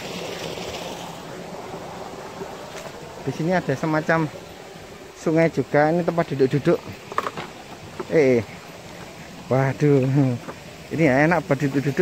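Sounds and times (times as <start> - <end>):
water running in a stream: 0.0 - 12.0.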